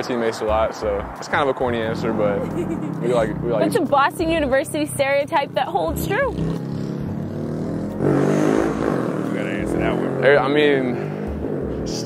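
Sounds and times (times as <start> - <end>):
motor vehicle accelerating past: 0.0 - 12.0.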